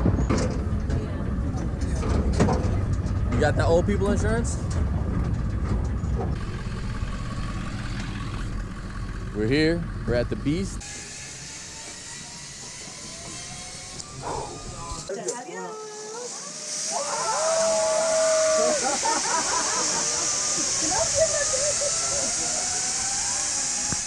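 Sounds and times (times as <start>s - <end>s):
zip line trolley hiss: 10.8s - 24.0s
voices calling out: 11.9s - 23.8s.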